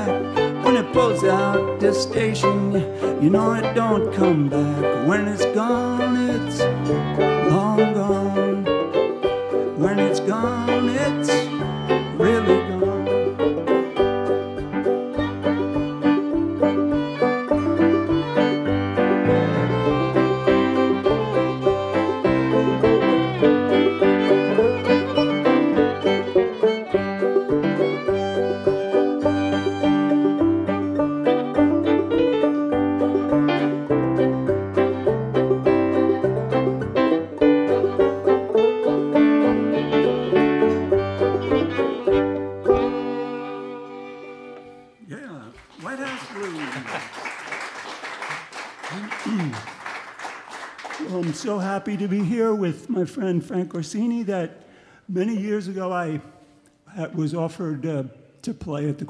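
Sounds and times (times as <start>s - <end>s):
banjo picking: 0.0s - 45.0s
fiddle: 0.0s - 45.1s
electric keyboard bass line: 3.3s - 43.0s.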